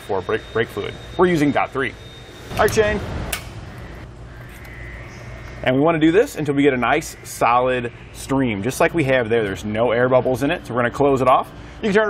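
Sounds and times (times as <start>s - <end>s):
pump whine over low hum: 0.0s - 12.0s.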